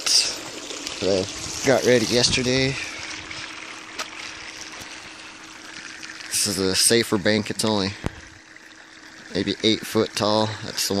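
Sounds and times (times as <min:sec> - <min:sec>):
faint steady hum: 0:00.0 - 0:11.0
water trickling: 0:00.0 - 0:11.0.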